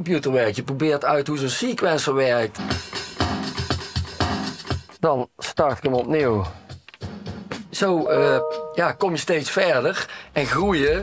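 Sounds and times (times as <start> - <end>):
drum machine beat: 2.6 - 5.0, 6.2 - 7.8.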